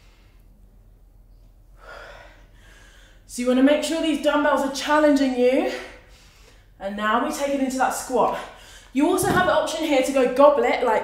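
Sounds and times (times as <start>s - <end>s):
woman breathing hard: 1.8s - 3.3s.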